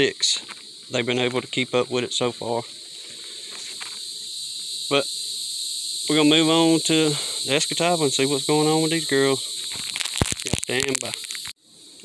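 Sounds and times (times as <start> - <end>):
insects chorus: 0.0 - 12.0.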